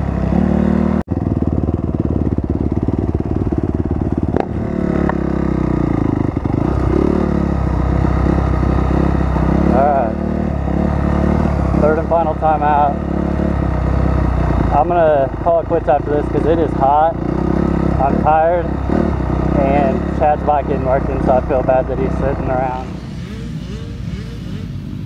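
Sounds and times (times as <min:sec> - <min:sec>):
dirt bike engine running: 0:00.0 - 0:25.0.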